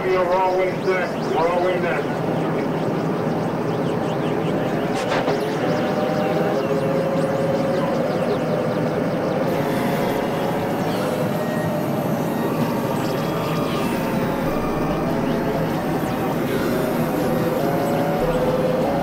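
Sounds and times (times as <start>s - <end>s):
chirping pitch glides: 0.0s - 19.0s
noise wash: 0.0s - 19.0s
sustained midrange tones: 0.0s - 19.0s.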